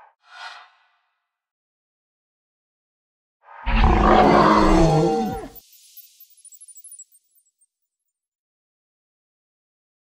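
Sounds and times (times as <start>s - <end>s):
loud creature roar: 3.7s - 5.5s.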